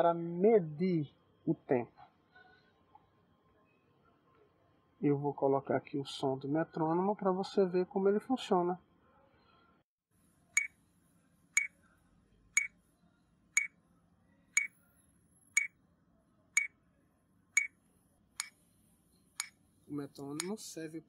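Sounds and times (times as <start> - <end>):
metronome ticking: 20.4 - 20.6.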